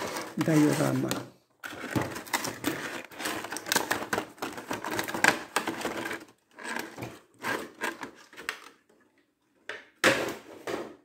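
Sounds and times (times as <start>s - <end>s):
plastic case scraping on table: 0.0s - 3.8s, 4.5s - 8.4s.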